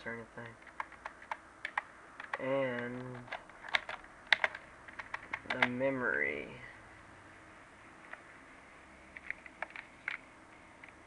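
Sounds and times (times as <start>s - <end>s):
computer keyboard keys clicking: 0.4s - 5.8s, 9.2s - 10.2s.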